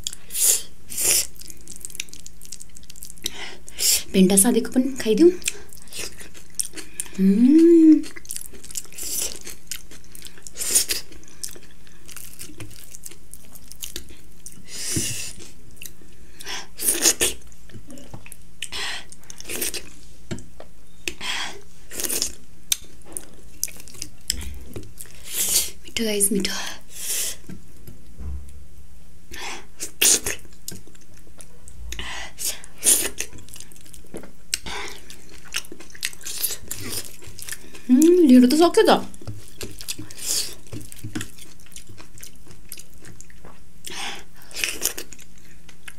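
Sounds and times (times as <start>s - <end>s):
person chewing food: 0.0s - 4.1s, 5.4s - 26.0s, 29.6s - 38.2s, 39.1s - 45.9s
rising hum: 28.2s - 28.8s.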